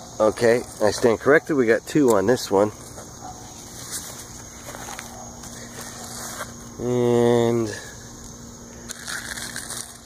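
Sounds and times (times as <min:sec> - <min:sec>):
low outdoor background hum: 0:00.0 - 0:10.0
leaves rustling: 0:02.6 - 0:06.8.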